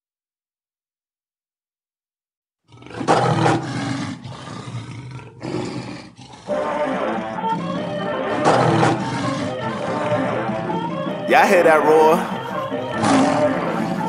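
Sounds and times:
lion roaring: 2.7 - 14.0
music: 6.5 - 14.0.

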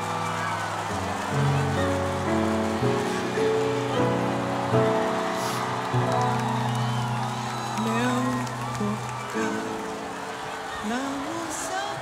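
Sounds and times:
stadium crowd noise: 0.0 - 12.0
sustained instrumental chords: 0.7 - 7.7.

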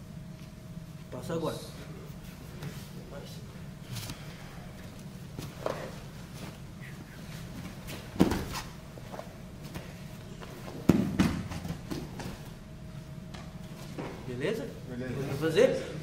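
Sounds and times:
low room hum: 0.0 - 16.0
scuffling on foam mats: 4.9 - 12.6.

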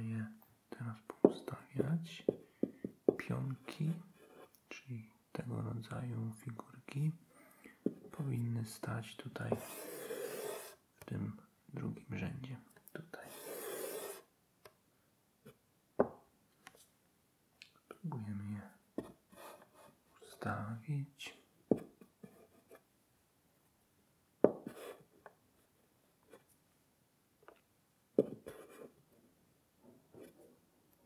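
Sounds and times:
person whispering: 0.0 - 2.4, 3.2 - 14.1, 17.7 - 18.8, 20.2 - 21.5.

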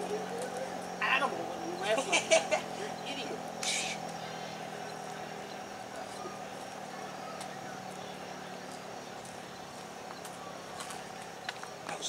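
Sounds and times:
siren steady tone: 0.0 - 8.6.

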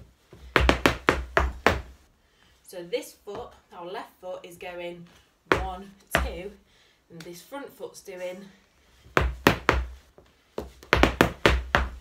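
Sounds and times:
hard shoes clicking on floor: 0.0 - 2.0, 5.5 - 6.4, 9.1 - 12.0.

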